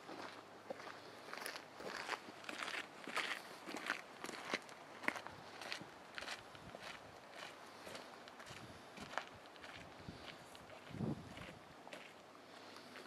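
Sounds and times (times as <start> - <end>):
footsteps on forest trail: 0.0 - 13.0.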